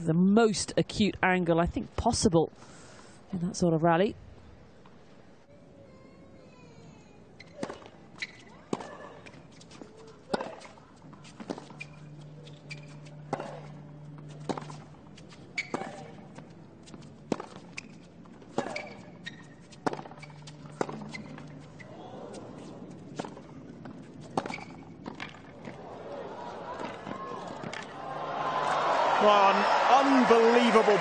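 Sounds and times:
tennis ball bounces: 7.4s - 13.7s, 14.3s - 14.8s, 15.6s - 21.6s, 22.6s - 25.8s
tennis balls struck by racquets: 7.5s - 9.0s, 10.2s - 11.8s, 13.3s - 13.8s, 15.6s - 21.2s.

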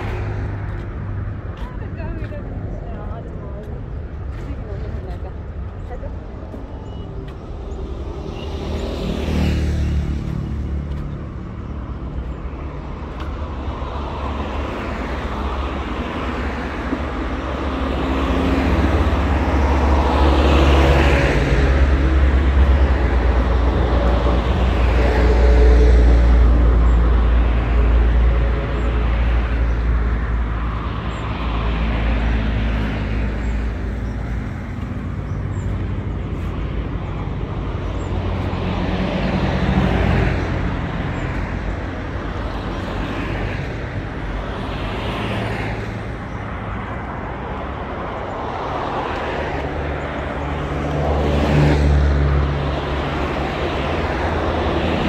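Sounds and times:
cars passing: 0.0s - 55.0s
road traffic rumble: 0.0s - 55.0s.

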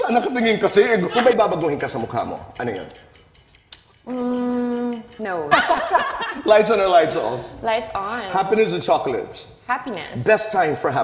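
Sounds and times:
woman humming: 4.0s - 5.5s.

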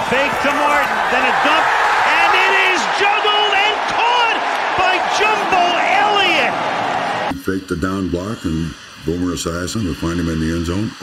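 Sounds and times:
excited shouting voices: 0.0s - 7.3s
stadium crowd cheering: 0.0s - 7.4s.

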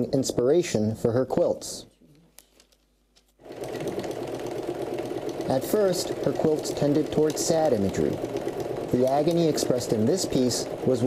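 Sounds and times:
sewing machine running: 3.4s - 11.0s.

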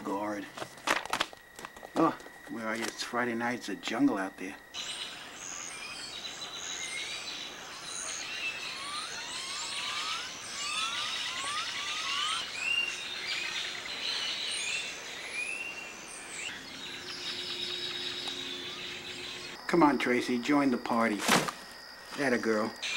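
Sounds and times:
steady high buzz: 0.0s - 22.9s
birds chirping: 1.4s - 22.9s.

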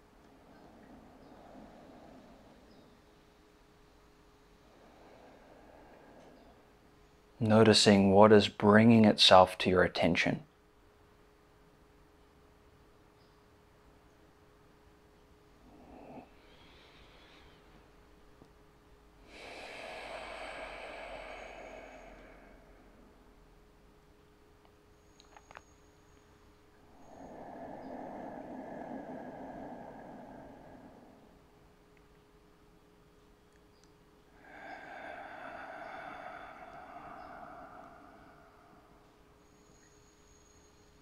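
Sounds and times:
long slow breath: 0.0s - 7.4s, 15.6s - 18.0s, 19.2s - 23.7s, 26.8s - 31.9s, 34.3s - 41.0s
slow exhale: 0.0s - 7.4s, 15.6s - 18.0s, 19.2s - 23.7s, 26.7s - 31.9s, 34.3s - 41.0s.

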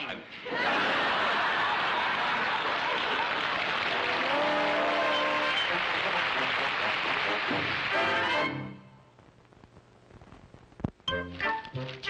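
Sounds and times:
audience applauding: 0.6s - 8.7s.

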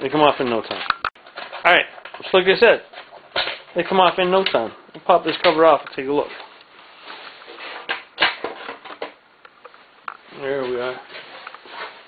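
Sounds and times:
rustling handling noise: 0.0s - 12.0s.

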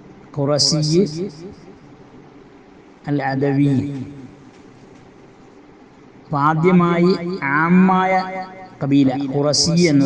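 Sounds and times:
man speaking with drawn-out vowels: 0.4s - 1.3s, 3.1s - 4.3s, 6.3s - 10.0s.

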